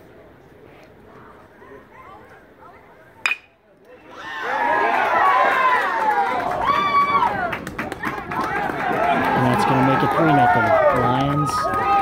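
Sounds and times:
low crowd voices: 0:00.0 - 0:12.0
metal bat hitting ball: 0:03.2 - 0:03.6.

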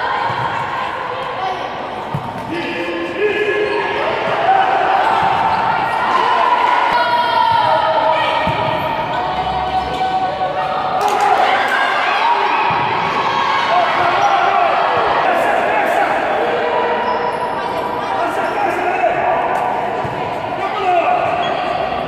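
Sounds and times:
voices shouting in a hall: 0:00.0 - 0:22.0.

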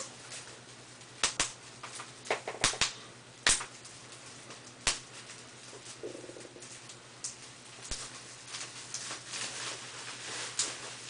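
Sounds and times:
plastic crackles: 0:00.0 - 0:11.0
bubble wrap popping: 0:01.2 - 0:03.8, 0:04.5 - 0:11.0.

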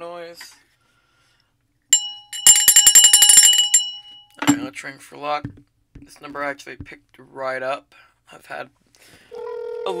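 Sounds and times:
hand bell ringing: 0:02.0 - 0:04.4.

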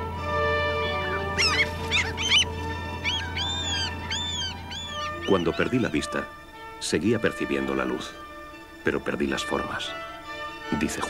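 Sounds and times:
gulls calling: 0:01.2 - 0:06.3.

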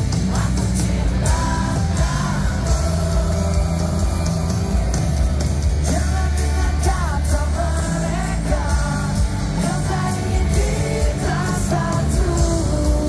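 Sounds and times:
live rock band playing: 0:00.0 - 0:13.0
male lead vocal: 0:00.0 - 0:13.0.

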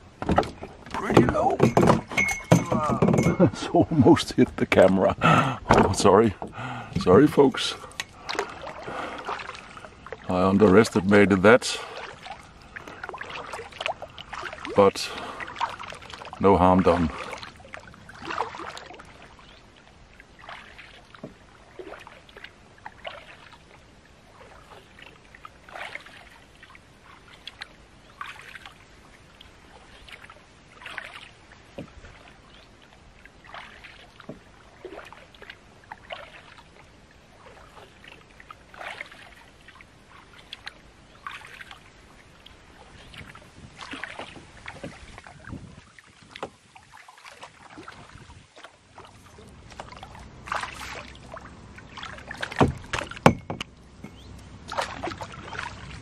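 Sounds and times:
paddle splashing in water: 0:00.0 - 0:56.0
knocks: 0:01.1 - 0:03.5, 0:52.6 - 0:54.2.

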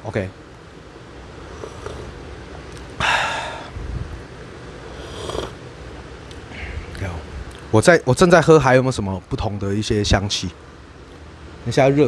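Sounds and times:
low room hum: 0:00.0 - 0:12.0
slurping sip from a cup: 0:01.4 - 0:02.9, 0:04.8 - 0:05.6.

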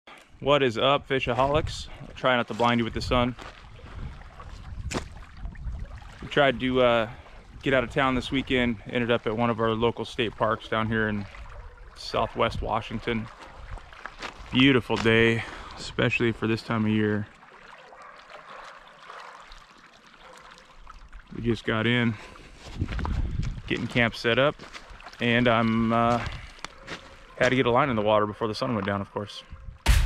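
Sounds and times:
small waves lapping: 0:02.0 - 0:27.7
wind rumble on microphone: 0:02.9 - 0:06.7, 0:22.6 - 0:23.8.

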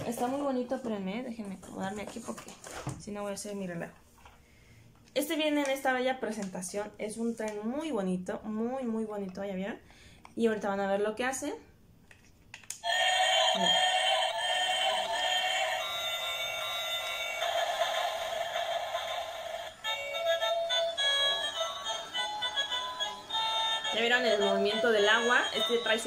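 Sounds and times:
toy train electronic tune: 0:12.8 - 0:26.0.

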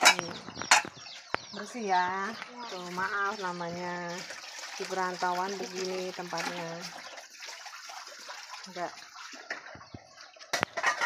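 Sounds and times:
water sloshing in a basin: 0:02.6 - 0:11.0.

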